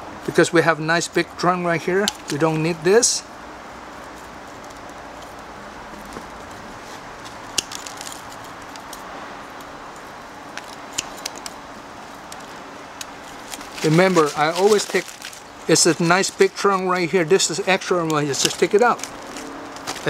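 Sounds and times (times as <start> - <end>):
steady background hiss: 0.0 - 20.0
pruning shears snipping branches: 7.2 - 9.7, 10.5 - 11.6, 12.3 - 16.9, 17.6 - 20.0.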